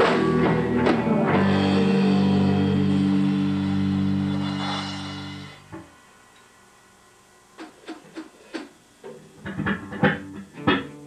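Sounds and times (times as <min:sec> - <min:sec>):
electric guitars and bass chord: 0:00.0 - 0:06.3.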